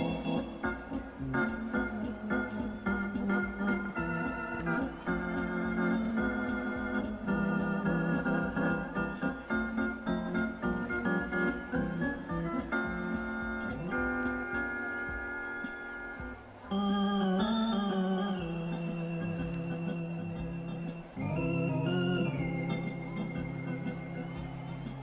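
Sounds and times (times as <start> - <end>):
organ music: 0.0 - 25.0.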